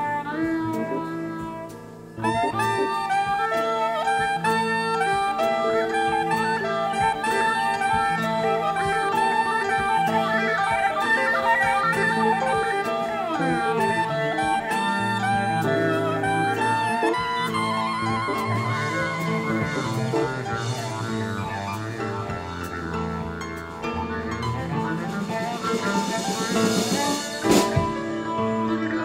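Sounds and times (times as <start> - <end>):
instrumental jazz music: 0.0 - 29.0.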